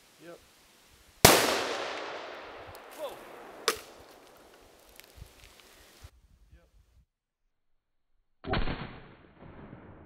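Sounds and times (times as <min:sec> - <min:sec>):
rifle shot: 0:01.2 - 0:04.4, 0:08.4 - 0:10.0.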